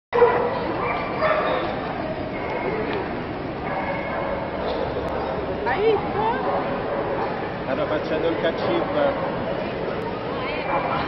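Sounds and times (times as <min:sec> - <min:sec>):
small dog barking: 0:00.2 - 0:02.9, 0:03.6 - 0:05.4
voices in busy hall: 0:00.2 - 0:11.0.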